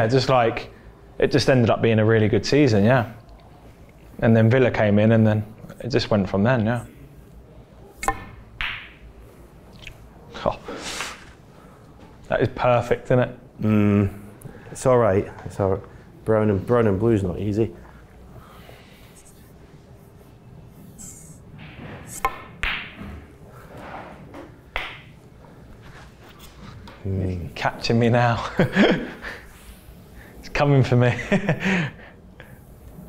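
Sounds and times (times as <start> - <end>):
snooker balls clicking: 8.0 - 9.1, 24.3 - 25.2.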